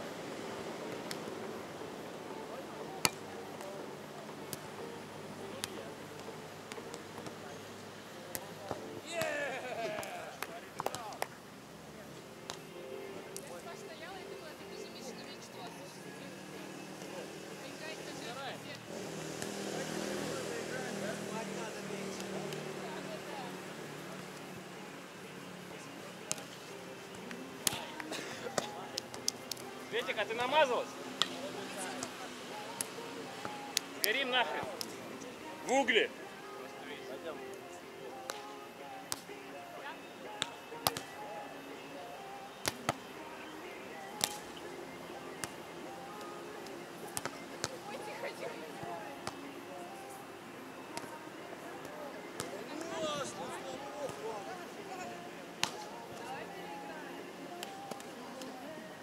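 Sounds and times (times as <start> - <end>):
faint voices: 0.0 - 59.0
volleyball being struck: 44.2 - 44.4.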